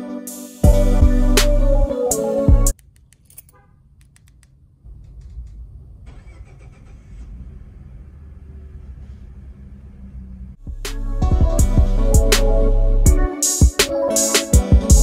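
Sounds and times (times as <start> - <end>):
music: 0.0 - 2.8, 10.6 - 15.0
truck engine starting and idling: 4.9 - 10.7.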